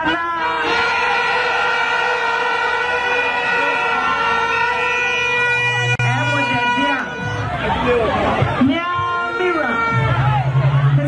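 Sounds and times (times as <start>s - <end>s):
loud steady pitched tone: 0.0s - 10.9s
faint crowd noise: 0.0s - 11.0s.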